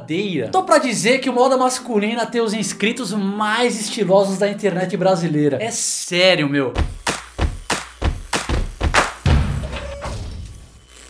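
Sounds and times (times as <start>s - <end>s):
heavy percussive thuds: 6.8s - 10.2s.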